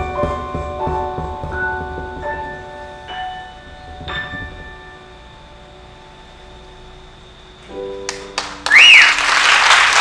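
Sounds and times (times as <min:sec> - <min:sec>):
grand piano high notes and chords: 0:00.0 - 0:09.3.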